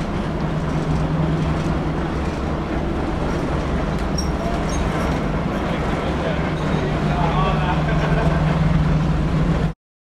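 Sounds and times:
diesel engine drone: 0:00.0 - 0:09.8.

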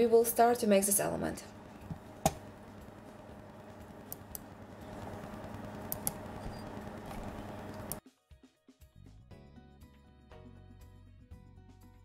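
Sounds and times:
steady low hum: 0:00.0 - 0:08.0
mouse and keyboard clicks: 0:05.8 - 0:08.0.

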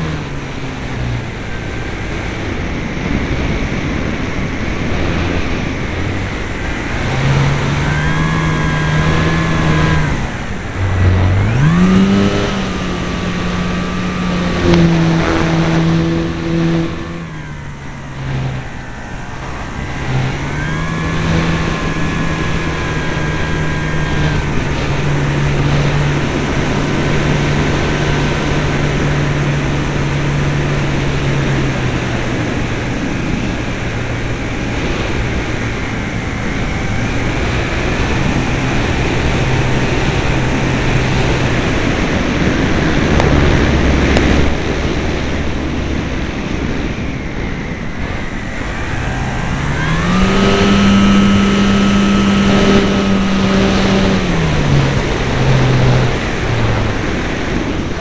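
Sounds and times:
electric motor and propeller hum: 0:00.0 - 0:58.0
wind rushing over camera: 0:00.0 - 0:58.0.

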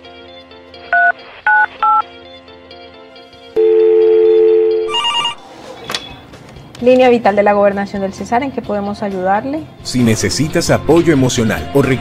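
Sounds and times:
soft background music: 0:00.0 - 0:12.0
phone ringing tone: 0:00.9 - 0:02.0, 0:03.6 - 0:05.4
keypad beeps: 0:01.0 - 0:02.0, 0:04.0 - 0:05.4
bright electronic phone ring: 0:03.6 - 0:05.4.

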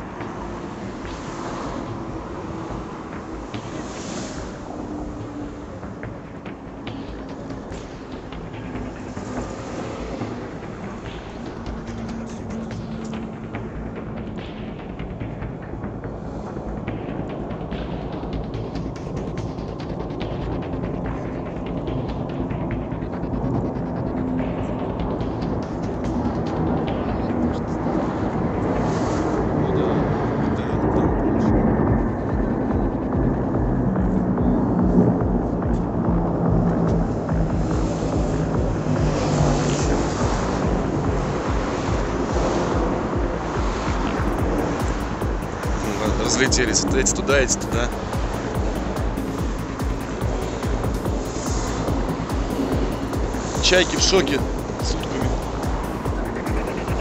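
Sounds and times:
jet aircraft flying over: 0:00.0 - 0:57.0.

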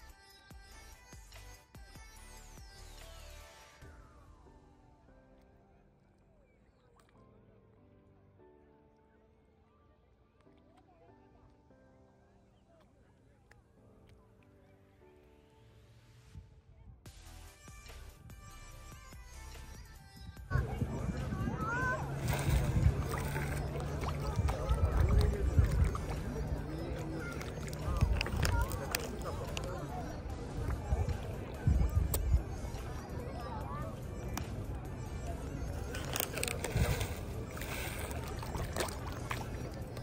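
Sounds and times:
people talking in background: 0:04.4 - 0:18.0, 0:18.6 - 0:40.0
fish splashing at water surface: 0:21.1 - 0:31.4, 0:35.8 - 0:40.0.

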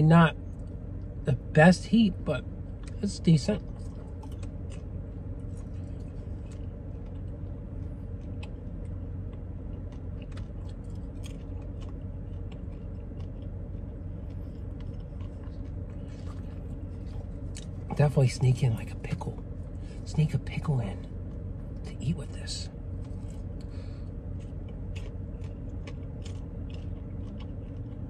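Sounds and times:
low hum inside car: 0:00.0 - 0:28.0
person chewing popcorn: 0:02.3 - 0:28.0.

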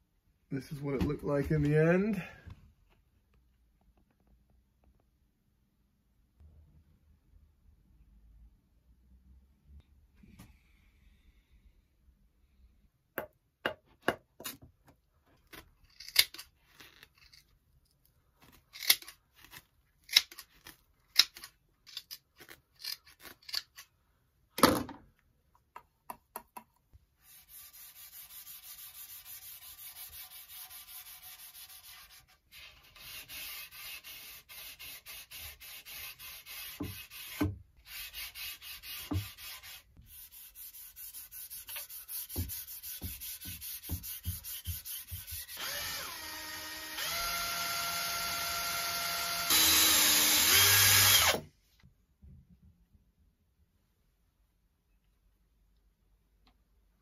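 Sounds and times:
pad rubbing on wood: 0:33.1 - 0:45.5.

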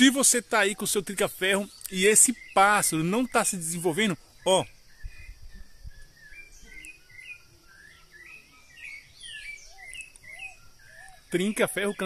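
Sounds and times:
songbirds singing: 0:00.0 - 0:12.0.

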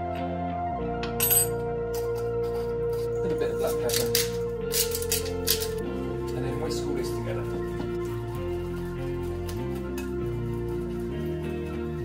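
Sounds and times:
background music chords: 0:00.0 - 0:12.0.

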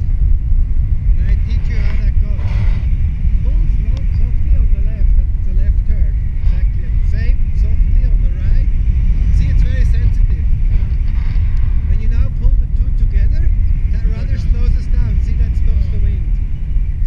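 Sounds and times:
wind buffeting microphone: 0:00.0 - 0:17.0
muffled voices: 0:01.1 - 0:16.5.

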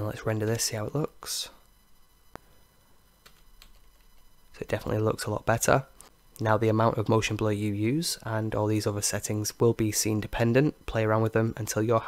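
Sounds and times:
low background hiss: 0:00.0 - 0:12.0
computer clicks: 0:03.2 - 0:04.2.

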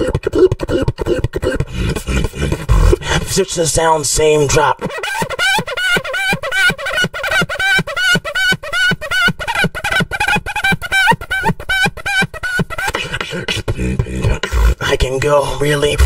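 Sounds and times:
person beatboxing: 0:00.0 - 0:05.0, 0:12.2 - 0:16.0.

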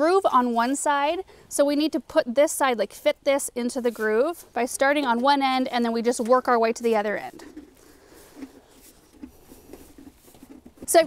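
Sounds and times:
woman speaking: 0:00.0 - 0:07.4
hands rubbing sheet metal: 0:07.4 - 0:11.0.

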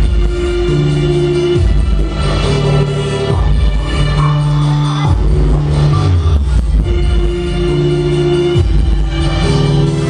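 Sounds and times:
loud live band music: 0:00.0 - 0:10.0.

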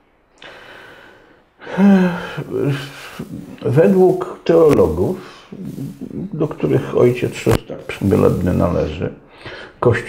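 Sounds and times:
man inhaling: 0:00.4 - 0:04.2, 0:05.1 - 0:06.4, 0:09.3 - 0:09.8
man speaking: 0:01.7 - 0:09.2, 0:09.8 - 0:10.0.

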